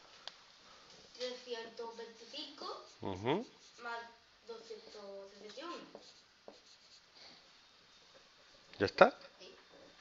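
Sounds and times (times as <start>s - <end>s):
marker scratching on paper: 1.2s - 7.4s.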